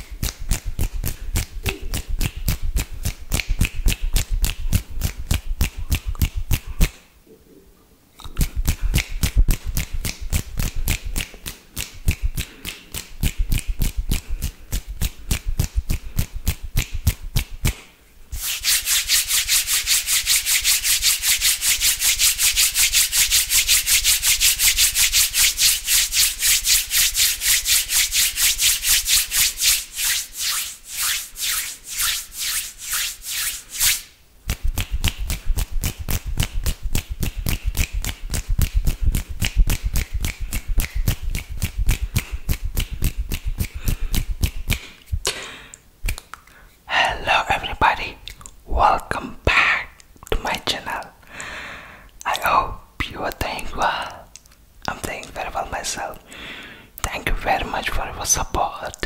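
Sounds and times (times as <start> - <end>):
hands rubbing against microphone: 8.4 - 45.0.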